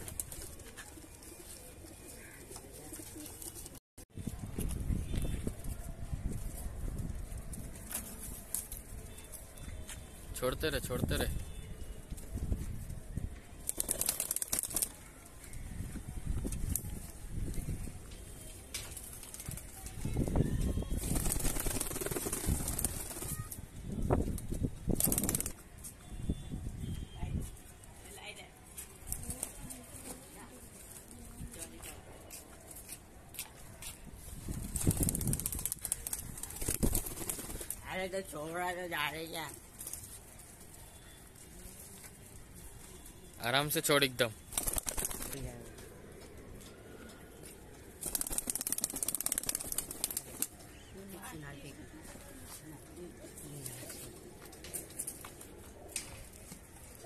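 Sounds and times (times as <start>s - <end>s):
flurry of wingbeats: 13.6s - 15.2s, 18.9s - 25.6s, 34.3s - 37.9s, 44.4s - 45.5s, 47.7s - 50.8s.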